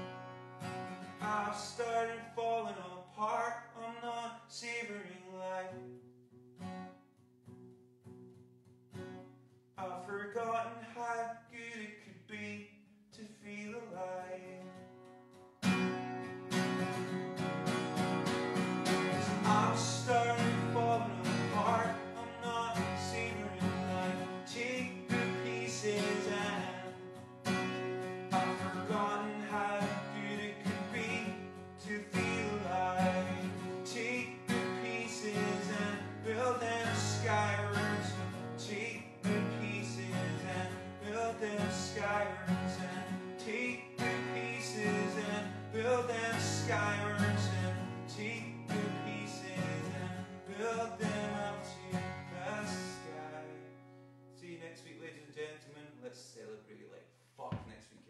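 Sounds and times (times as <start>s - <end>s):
acoustic guitar strumming chords: 0.0s - 54.3s.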